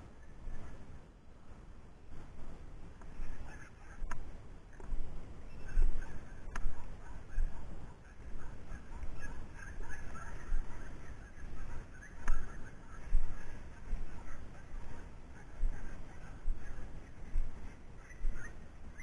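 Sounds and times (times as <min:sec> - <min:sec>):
footsteps through dry grass: 0:08.2 - 0:18.6.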